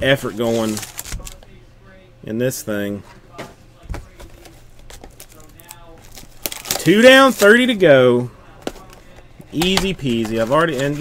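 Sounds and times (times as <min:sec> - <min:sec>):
cardboard rustling and crinkling: 0:00.0 - 0:01.4, 0:03.9 - 0:07.6, 0:08.6 - 0:11.0.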